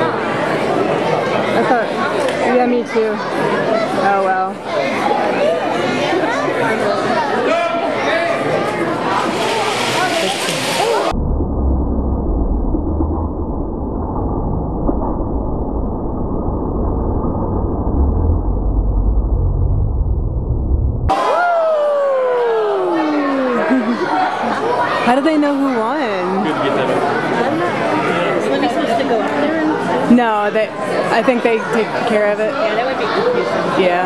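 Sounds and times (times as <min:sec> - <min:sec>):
chattering crowd: 0:00.0 - 0:11.2, 0:21.1 - 0:34.0.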